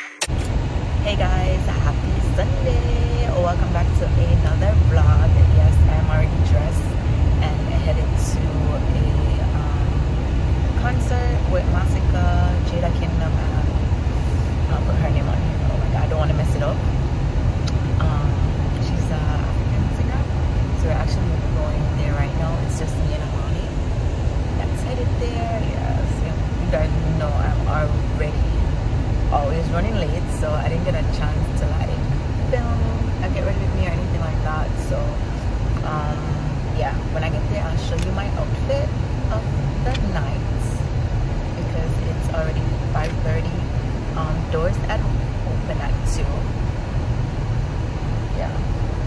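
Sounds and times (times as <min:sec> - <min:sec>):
woman talking: 0:00.2 - 0:17.0, 0:17.6 - 0:23.8, 0:24.5 - 0:40.9, 0:41.5 - 0:46.6, 0:48.3 - 0:48.8
car cabin road rumble: 0:00.2 - 0:49.0.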